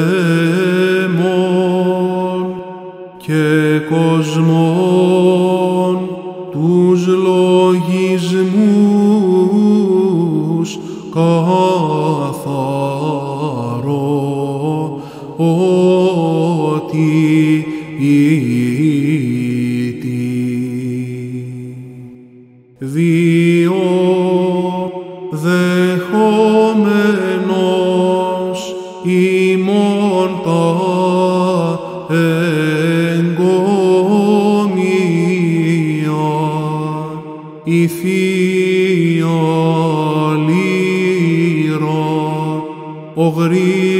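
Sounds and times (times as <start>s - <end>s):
low held vocal drone: 0.0s - 43.9s.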